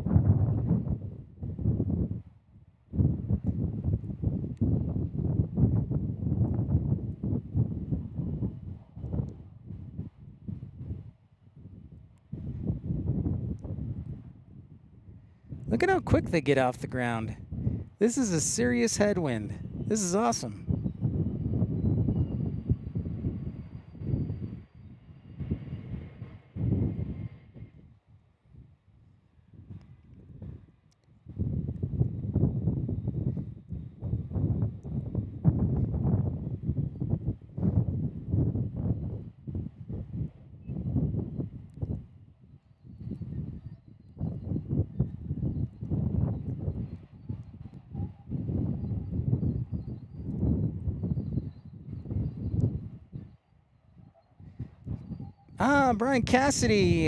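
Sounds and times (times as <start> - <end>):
faint jet engine whine: 0.0 - 30.8
wind buffeting microphone: 0.0 - 55.6.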